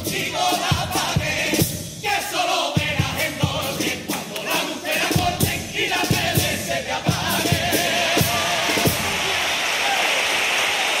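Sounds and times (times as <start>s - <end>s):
audience applauding: 8.6s - 11.0s.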